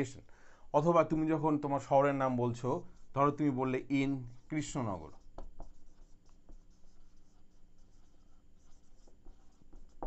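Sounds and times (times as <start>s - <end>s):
marker writing on whiteboard: 2.2s - 10.0s.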